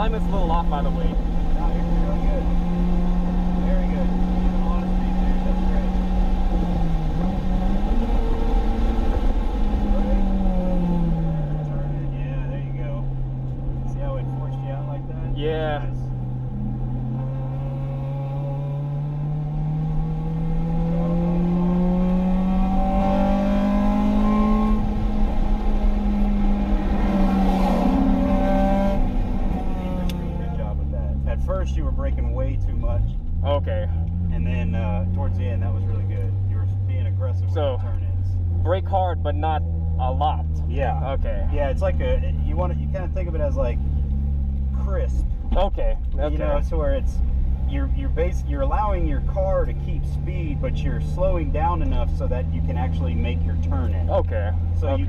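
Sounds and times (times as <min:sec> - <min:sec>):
car engine from inside cabin: 0:00.0 - 0:55.0
road noise: 0:00.0 - 0:55.0.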